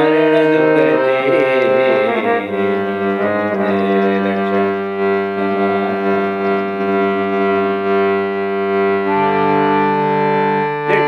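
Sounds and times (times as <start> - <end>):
harmonium chord: 0.0 - 11.0.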